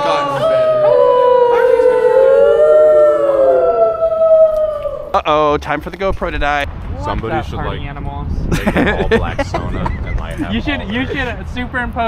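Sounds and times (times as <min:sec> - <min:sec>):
people howling in chorus: 0:00.0 - 0:05.2.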